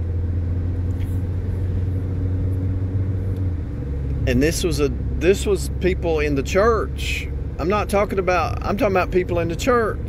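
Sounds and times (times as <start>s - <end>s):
machine hum and rumble: 0.0s - 10.0s.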